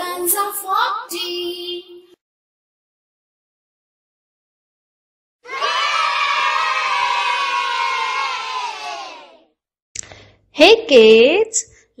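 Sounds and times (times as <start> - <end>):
children cheering: 5.4 - 9.5.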